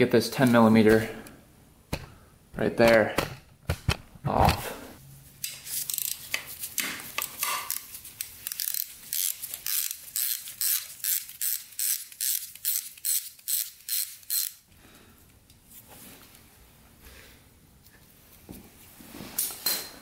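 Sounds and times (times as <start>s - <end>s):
socket ratchet clicking: 5.8s - 6.2s, 7.3s - 14.6s.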